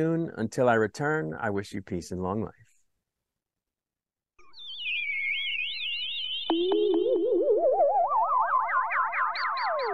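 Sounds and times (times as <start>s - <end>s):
warbling synthesized tones: 4.7s - 9.9s.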